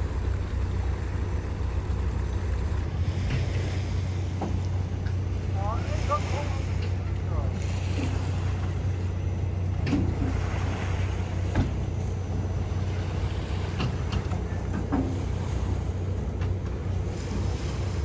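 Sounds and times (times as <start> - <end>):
low engine drone: 0.0 - 18.0
water noise: 0.0 - 18.0
wind: 0.0 - 18.0.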